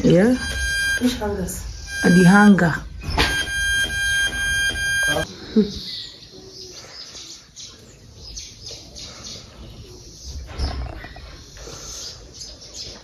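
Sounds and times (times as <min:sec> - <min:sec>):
small birds chirping: 0:04.7 - 0:13.0.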